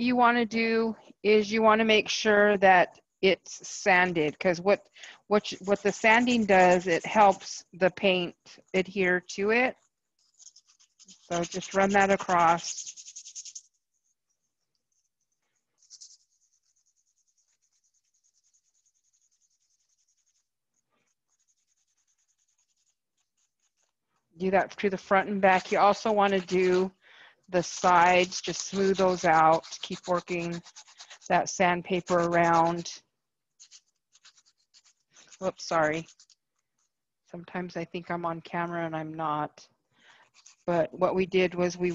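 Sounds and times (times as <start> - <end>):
sandpaper rubbing: 5.4 - 7.6, 10.2 - 15.2, 15.8 - 23.9, 25.3 - 26.8, 27.6 - 32.9, 33.6 - 36.4, 40.3 - 40.7.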